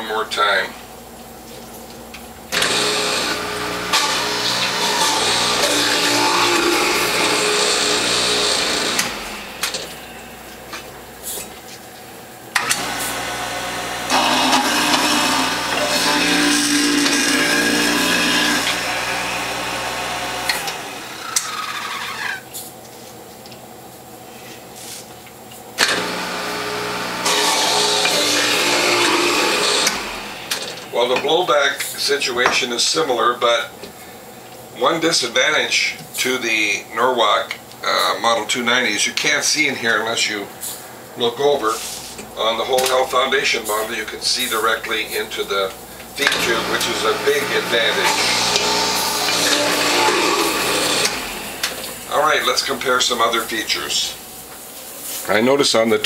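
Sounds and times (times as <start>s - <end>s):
juicer motor humming: 2.4s - 22.5s, 25.8s - 31.0s, 46.0s - 52.9s
juicer grinding carrots: 2.5s - 11.8s, 12.5s - 22.6s, 25.8s - 31.4s, 45.7s - 54.0s.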